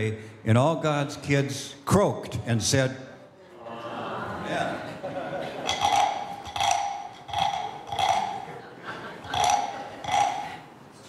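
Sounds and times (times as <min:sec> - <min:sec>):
wooden frog guiro croaks: 0:05.6 - 0:08.6, 0:09.2 - 0:10.7.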